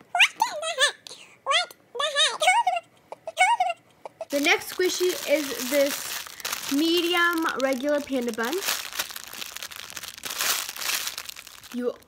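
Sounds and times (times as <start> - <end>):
plastic bag crinkling: 4.3 - 12.0.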